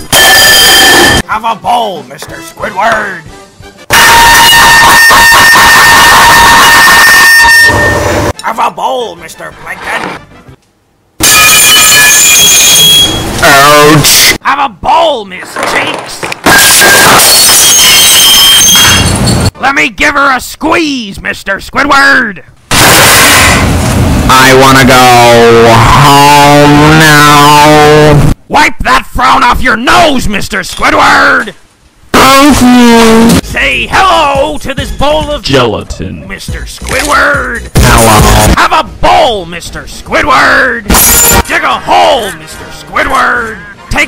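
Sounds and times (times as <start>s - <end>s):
distorted high tone: 0.0s - 1.2s, 3.9s - 8.3s, 11.2s - 14.4s, 22.7s - 23.6s, 24.3s - 28.4s.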